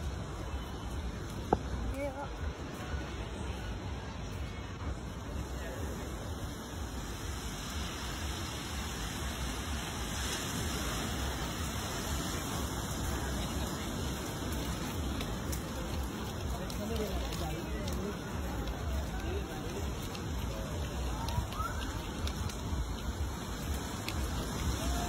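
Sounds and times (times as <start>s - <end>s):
babble of passers-by: 0.0s - 10.1s, 10.8s - 25.0s.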